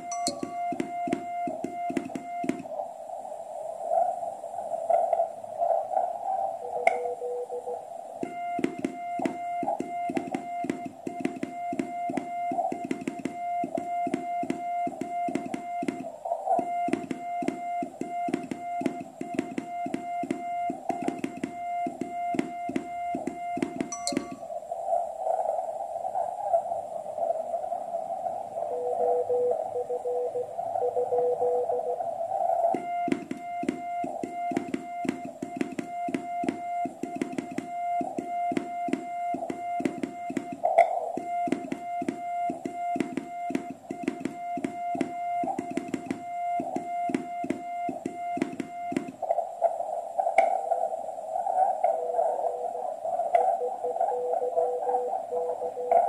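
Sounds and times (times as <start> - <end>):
morse code beeps: 0.0 - 2.7, 8.2 - 24.5, 32.7 - 49.3
rapid clicking: 0.0 - 2.7, 8.2 - 24.4, 32.8 - 49.2.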